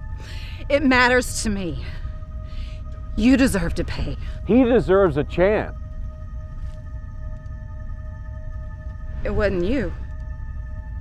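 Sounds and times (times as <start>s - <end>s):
low rumble: 0.0s - 11.0s
suspenseful held chord: 0.0s - 11.0s.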